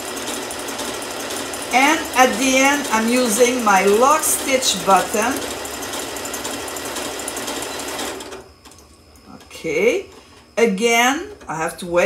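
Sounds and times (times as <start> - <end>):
sewing machine running: 0.0 - 8.8.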